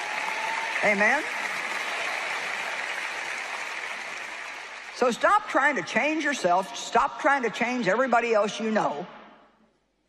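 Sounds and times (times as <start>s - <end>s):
audience applauding: 0.0s - 5.1s.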